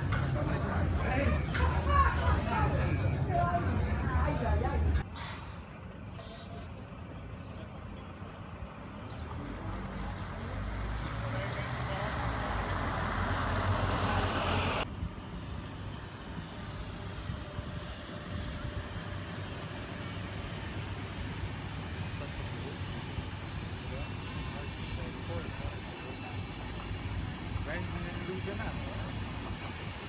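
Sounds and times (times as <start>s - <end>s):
bus diesel engine rumbling: 0.0s - 30.0s
brief high hiss: 5.1s - 6.6s.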